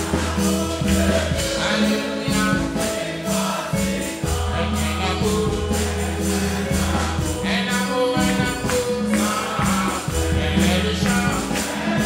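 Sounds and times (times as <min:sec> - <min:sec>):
bass line: 0:00.0 - 0:12.0
congregation singing: 0:00.0 - 0:12.0
high percussion beat: 0:00.0 - 0:12.0.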